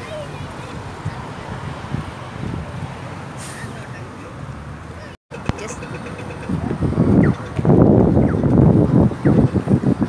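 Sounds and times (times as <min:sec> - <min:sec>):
wind buffeting microphone: 0:00.0 - 0:03.3, 0:05.3 - 0:10.0.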